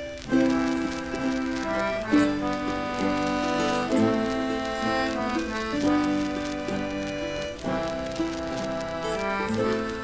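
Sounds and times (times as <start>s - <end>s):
concertina playing chords: 0.0s - 10.0s
crackling record surface noise: 0.0s - 10.0s.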